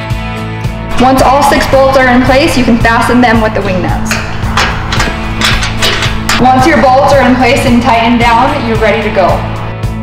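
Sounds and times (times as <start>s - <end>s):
bass line: 0.8s - 10.0s
drum hits: 0.9s - 8.9s.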